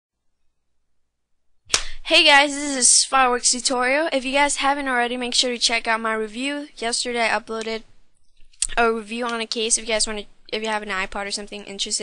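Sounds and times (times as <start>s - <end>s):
person speaking: 1.7s - 12.0s.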